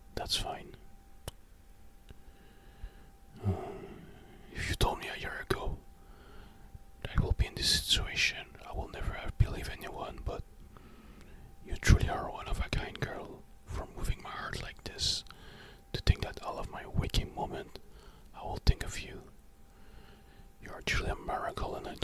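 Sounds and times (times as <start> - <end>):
mouth sounds and soft clicks: 0.2 - 1.4
close-miked breaths: 2.1 - 4.8, 5.8 - 6.9, 10.5 - 11.6, 15.2 - 16.0, 17.7 - 18.4, 19.3 - 20.7.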